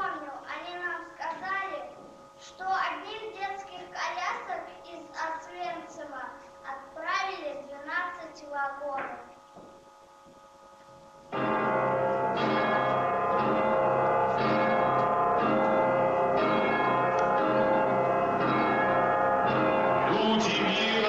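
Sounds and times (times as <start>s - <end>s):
deep bell tolling: 9.8s - 21.0s.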